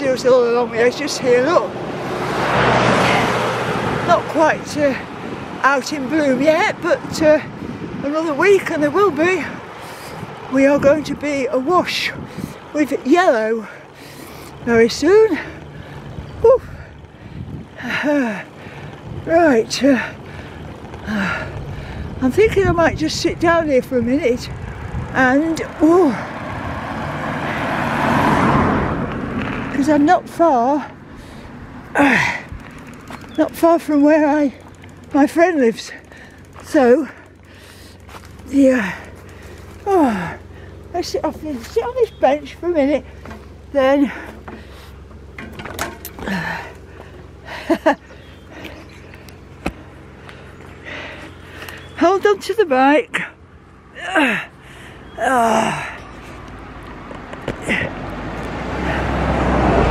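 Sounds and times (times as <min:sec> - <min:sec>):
bicycle riding noise: 0:00.0 - 0:59.9
wind: 0:00.0 - 0:59.9
woman speaking: 0:52.0 - 0:53.2.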